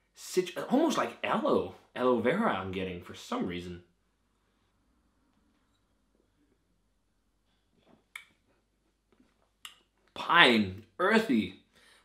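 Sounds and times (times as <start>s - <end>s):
lip smacks: 8.0s - 10.1s.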